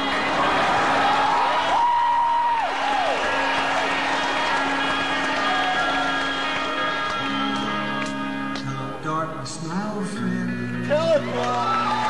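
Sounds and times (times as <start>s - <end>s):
audience applauding and cheering: 0.0s - 8.3s, 11.0s - 12.0s.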